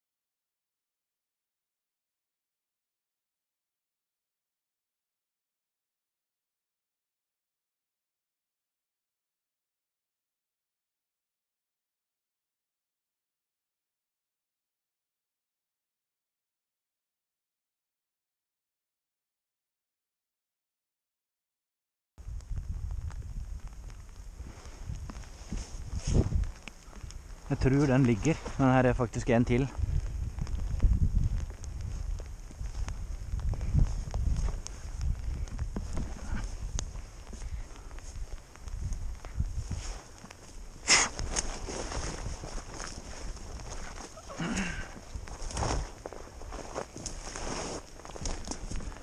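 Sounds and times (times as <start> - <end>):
wind rumble on microphone: 22.2 - 49.0
faint clicks: 26.4 - 27.4
footsteps through scrub: 39.6 - 49.0.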